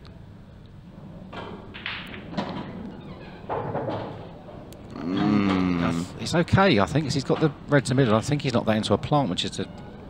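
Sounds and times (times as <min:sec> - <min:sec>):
pool balls knocking: 0:01.3 - 0:04.4.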